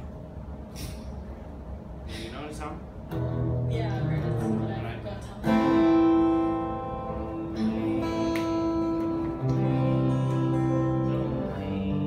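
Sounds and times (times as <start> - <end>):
acoustic guitar chords ringing: 3.0 - 12.0.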